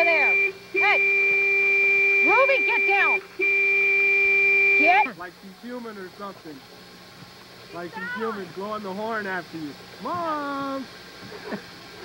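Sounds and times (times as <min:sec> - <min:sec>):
car horn blasts: 0:00.0 - 0:05.2.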